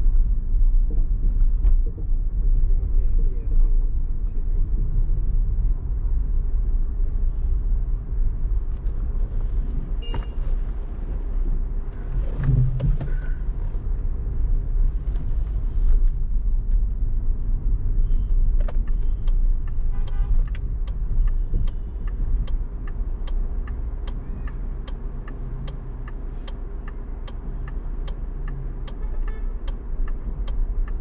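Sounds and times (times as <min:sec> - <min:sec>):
car road and engine rumble: 0:00.0 - 0:31.0
turn signal ticking: 0:04.9 - 0:31.0.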